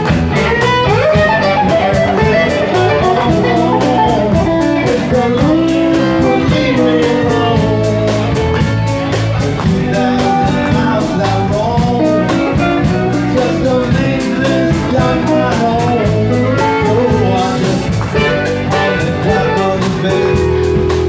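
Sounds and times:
acoustic guitar strumming: 0:00.0 - 0:21.0
electric guitar: 0:00.0 - 0:21.0
man singing: 0:01.5 - 0:21.0.

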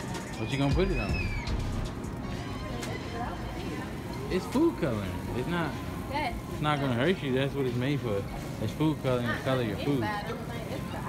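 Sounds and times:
steady background noise: 0:00.0 - 0:11.0
thin high whistle-like tone: 0:00.3 - 0:01.7.

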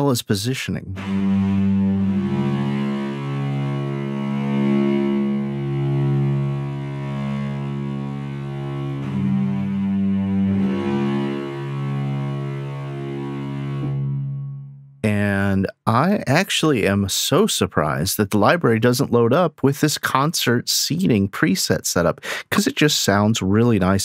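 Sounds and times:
cello ensemble playing low chords: 0:00.9 - 0:15.4.

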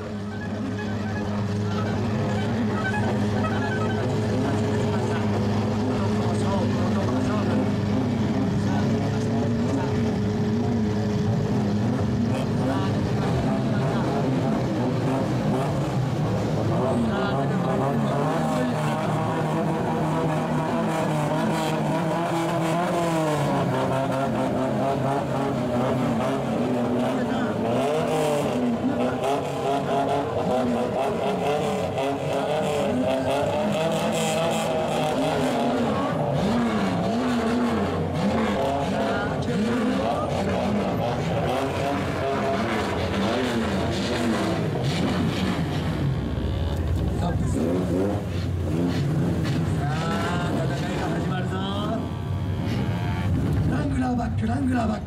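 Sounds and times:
car engine revving with loud exhaust: 0:00.0 - 0:55.0
crowd voices: 0:00.0 - 0:55.0.

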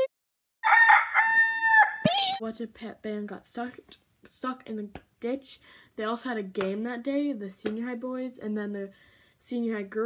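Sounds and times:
rooster crowing: 0:00.6 - 0:02.4.

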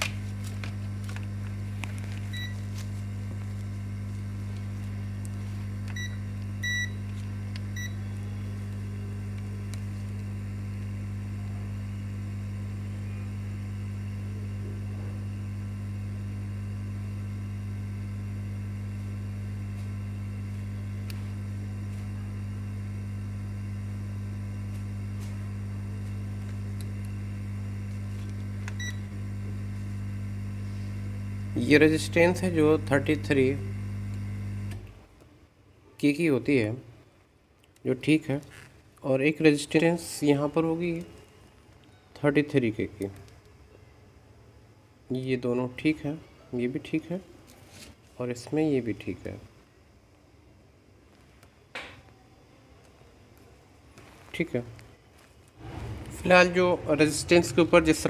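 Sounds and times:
low electrical hum: 0:00.0 - 0:58.0
multimeter beeps: 0:02.3 - 0:02.7, 0:05.9 - 0:07.1, 0:07.7 - 0:08.2, 0:28.7 - 0:29.1.

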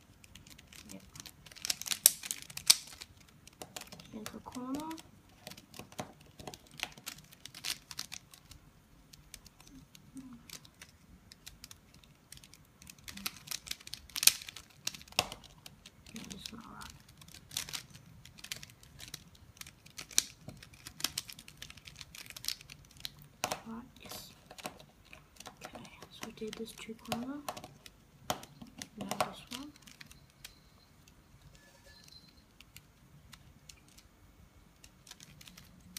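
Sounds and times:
plastic puzzle cube clicking: 0:00.0 - 0:31.2, 0:32.6 - 0:34.1, 0:34.7 - 0:35.9.

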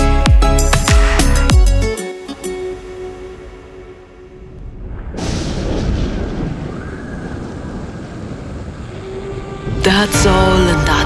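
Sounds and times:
electronic music: 0:00.0 - 0:04.2
thunder crash and rumble: 0:04.4 - 0:10.6
rain hiss: 0:05.6 - 0:10.3.

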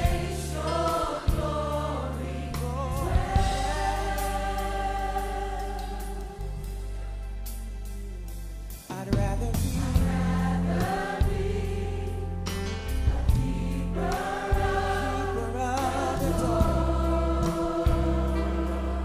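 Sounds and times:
gospel choir singing: 0:00.0 - 0:07.6, 0:09.5 - 0:19.0
deep bass line: 0:00.0 - 0:19.0.

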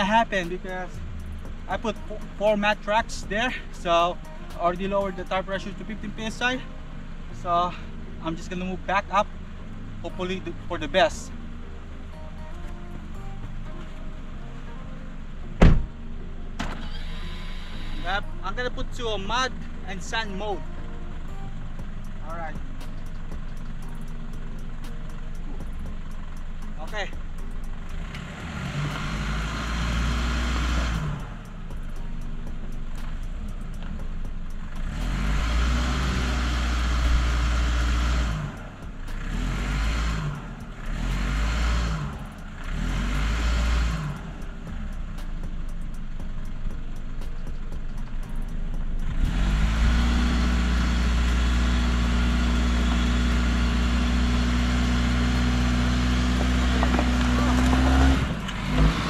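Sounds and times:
car engine revving: 0:16.6 - 0:59.0.

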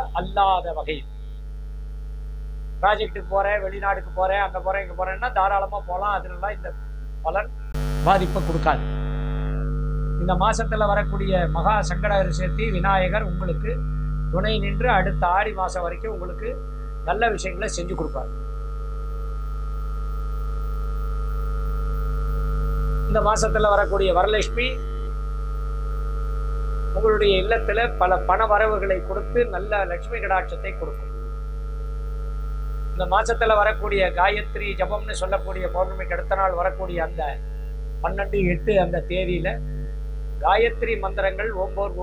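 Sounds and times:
man speaking: 0:00.0 - 0:01.0, 0:02.8 - 0:06.7, 0:07.3 - 0:08.8, 0:10.2 - 0:13.8, 0:14.4 - 0:18.3, 0:23.1 - 0:24.8, 0:27.0 - 0:31.0, 0:33.0 - 0:37.4, 0:38.0 - 0:39.8, 0:40.4 - 0:42.0
low electrical hum: 0:00.0 - 0:42.0.

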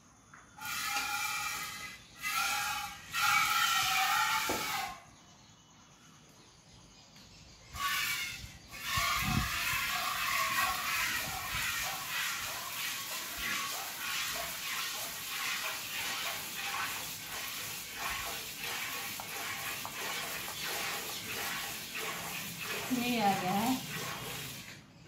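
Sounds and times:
milk squirting into metal bucket: 0:07.8 - 0:24.9.

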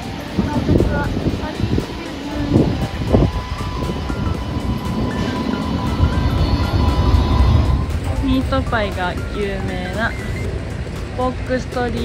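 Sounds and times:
background music: 0:00.0 - 0:12.0
tram rumble: 0:00.0 - 0:12.0.

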